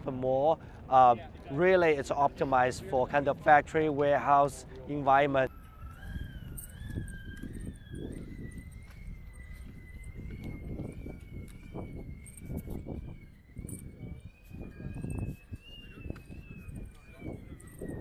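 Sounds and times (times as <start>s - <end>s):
high electric motor whine: 5.4s - 18.0s.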